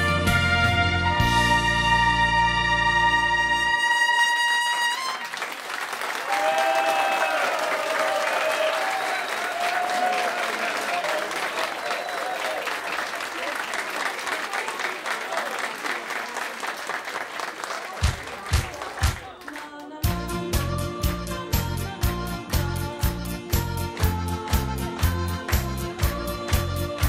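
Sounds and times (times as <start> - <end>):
audience applauding: 4.2 - 20.0.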